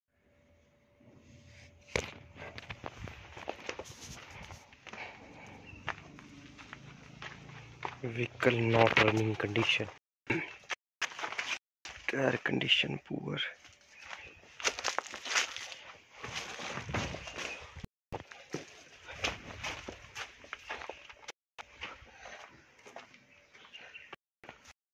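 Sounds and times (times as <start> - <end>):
footsteps on leafy dirt: 2.4 - 12.8, 13.4 - 24.7.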